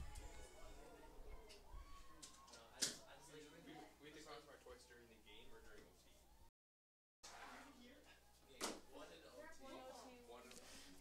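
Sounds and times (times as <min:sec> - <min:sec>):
faint distant voices: 0:00.0 - 0:06.5.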